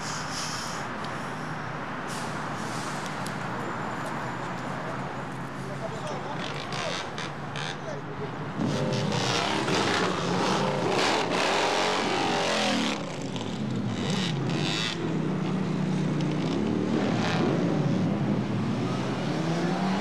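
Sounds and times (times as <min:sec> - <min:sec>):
motorcycle engine revving: 0:08.6 - 0:15.6.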